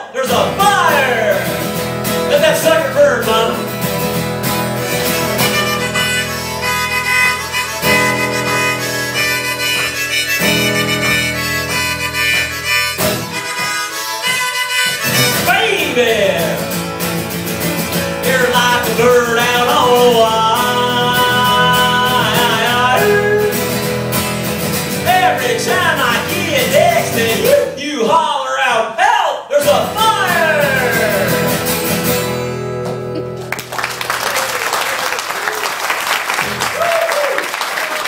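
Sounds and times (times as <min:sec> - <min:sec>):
strummed acoustic guitar: 0:00.2 - 0:27.8, 0:29.6 - 0:34.0
harmonica solo: 0:03.6 - 0:18.3, 0:19.8 - 0:27.1.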